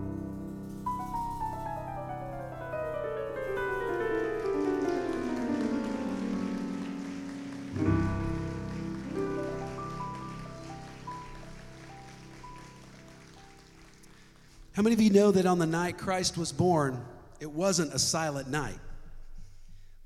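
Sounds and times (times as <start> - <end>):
digital piano playing: 0.0 - 15.5.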